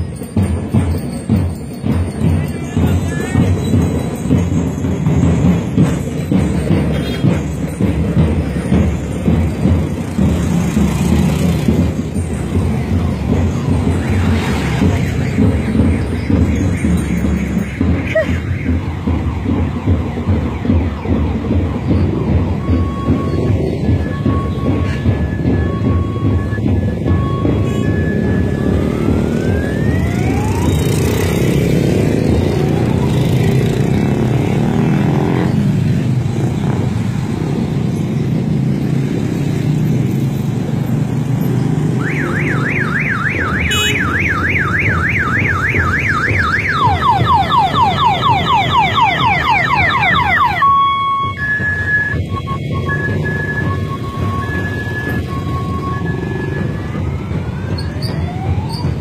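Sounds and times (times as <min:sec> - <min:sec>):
cars passing: 0:00.0 - 0:59.0
electronic siren warbling: 0:25.4 - 0:33.1, 0:42.0 - 0:59.0
car horn beeps: 0:43.4 - 0:44.3.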